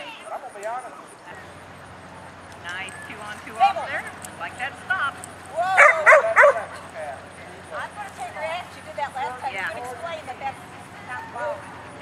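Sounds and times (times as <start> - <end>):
dog barking: 5.8 - 6.8.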